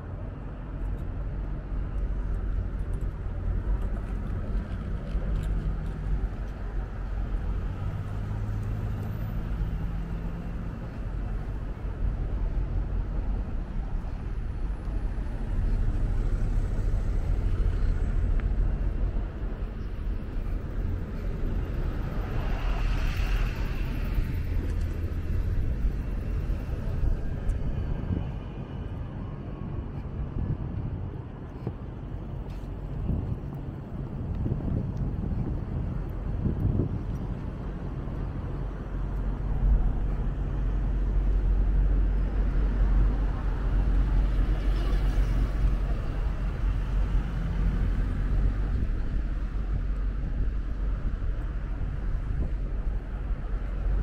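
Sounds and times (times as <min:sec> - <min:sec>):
road traffic rumble on a bridge: 0:00.0 - 0:54.0.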